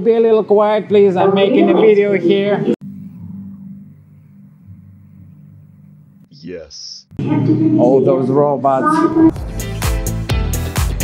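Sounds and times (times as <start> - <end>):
low rumbling drone: 2.7 - 6.3.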